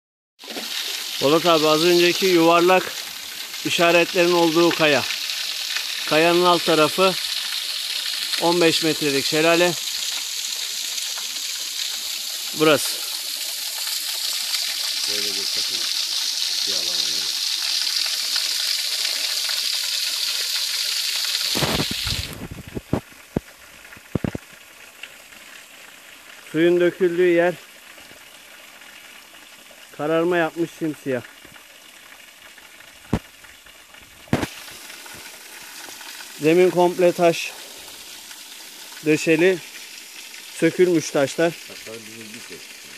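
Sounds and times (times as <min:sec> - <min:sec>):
waterfall hiss: 0:00.4 - 0:31.3, 0:34.2 - 0:42.9
waterfall rushing: 0:12.4 - 0:13.3.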